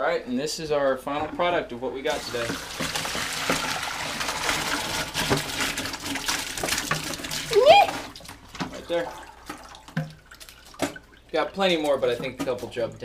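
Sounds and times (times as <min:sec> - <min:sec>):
water splashing into colander: 0:02.1 - 0:13.0.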